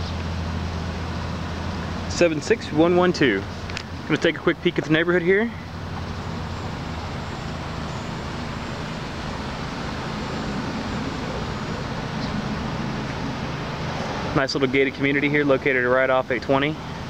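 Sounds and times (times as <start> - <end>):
distant road traffic hum: 0.0 - 17.0
low drone: 0.0 - 17.0.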